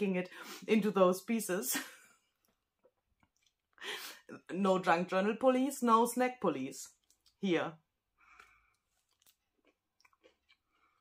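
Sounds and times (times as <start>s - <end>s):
chewing crunchy chocolate bar: 8.2s - 11.0s.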